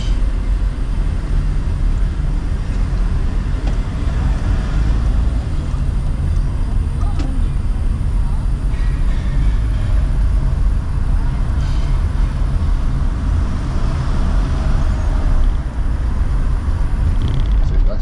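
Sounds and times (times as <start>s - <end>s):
car engine and road rumble: 0.0s - 18.0s.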